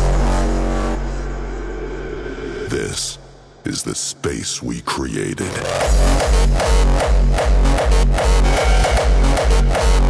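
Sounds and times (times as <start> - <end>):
deep bass note: 0.0 - 3.6
steady synth tone: 0.0 - 3.6.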